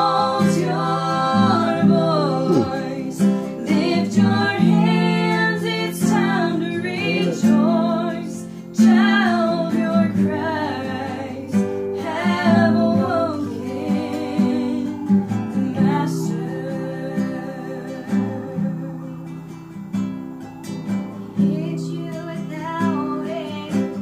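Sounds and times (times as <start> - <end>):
women singing a hymn: 0.0 - 20.0, 20.6 - 24.0
acoustic guitar: 0.0 - 24.0.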